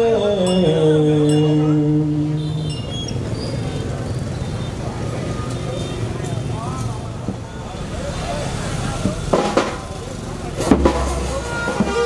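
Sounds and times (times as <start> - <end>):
motorbike street traffic: 0.0 - 12.0
drum and percussion strikes: 9.0 - 12.0
held wind instrument note: 11.0 - 12.0.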